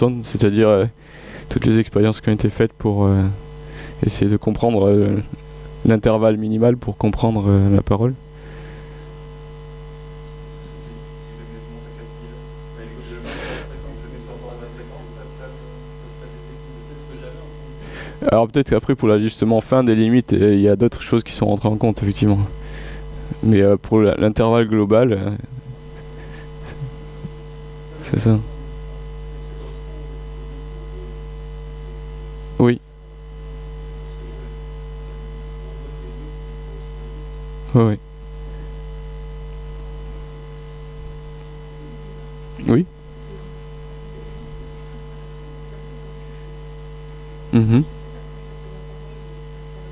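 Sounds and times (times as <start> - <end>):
electrical mains hum: 0.0 - 49.9
person speaking a word: 47.5 - 48.7.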